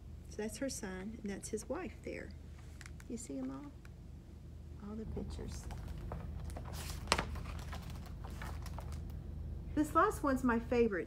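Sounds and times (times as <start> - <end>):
steady low hum: 0.0 - 11.0
paper page rustling: 5.6 - 9.1.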